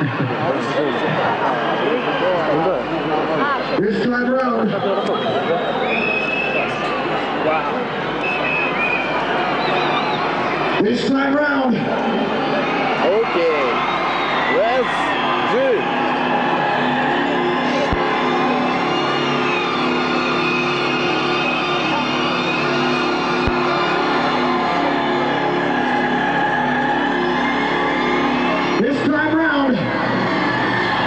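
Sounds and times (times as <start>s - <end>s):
crowd noise: 0.0s - 31.0s
crowd whooping: 0.0s - 31.0s
sustained droning chord: 17.2s - 28.8s.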